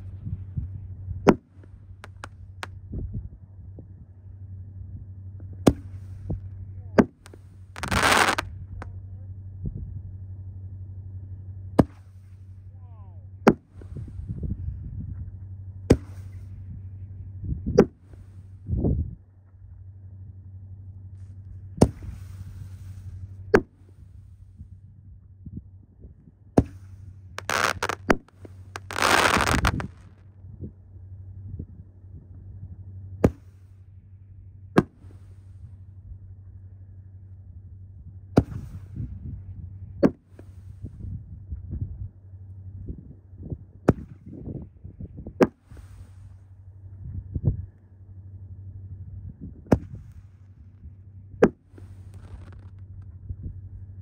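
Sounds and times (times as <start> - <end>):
loud noisy firework bursts: 7.2 - 8.5, 27.4 - 30.2.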